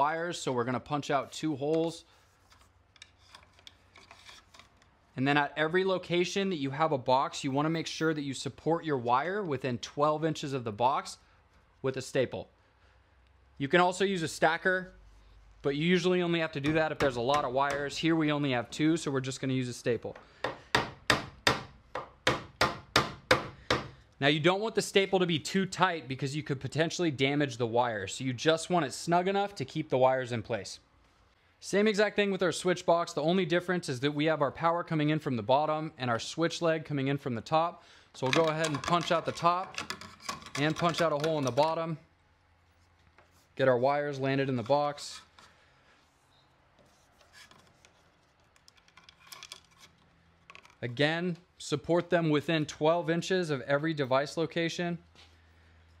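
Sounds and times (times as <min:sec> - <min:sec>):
cable rustling and clicking: 0:01.7 - 0:05.0, 0:46.8 - 0:50.9
hammer striking staple into wood: 0:20.4 - 0:24.0.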